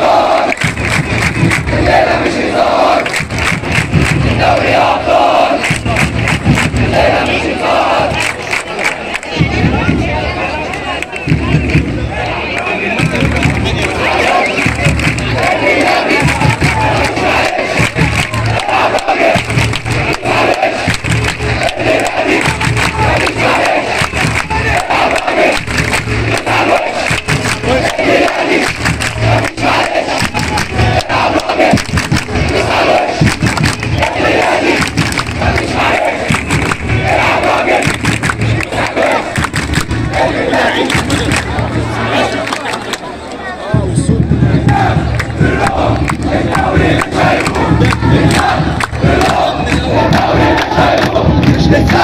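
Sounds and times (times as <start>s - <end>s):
crowd chanting in rhythm: 0.0s - 52.0s.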